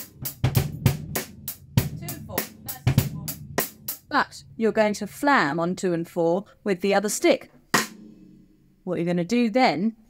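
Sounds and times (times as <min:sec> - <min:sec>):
bass drum thumps: 0:00.0 - 0:05.2
drum kit groove: 0:00.0 - 0:05.7, 0:07.6 - 0:08.7.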